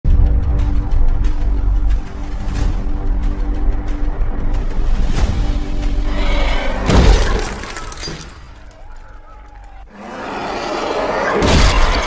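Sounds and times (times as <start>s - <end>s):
loud shattering crash: 6.9s - 8.7s.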